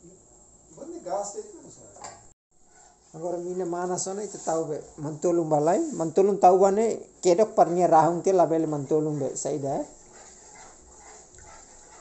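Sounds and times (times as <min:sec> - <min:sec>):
wooden spatula stirring: 0:02.6 - 0:12.0
eggs sizzling in hot oil: 0:06.1 - 0:12.0.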